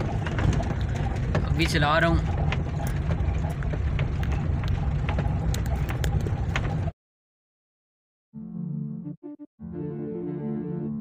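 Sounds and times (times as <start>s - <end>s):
car engine and road rumble: 0.0s - 6.9s
light clicks and rattles: 0.0s - 6.9s.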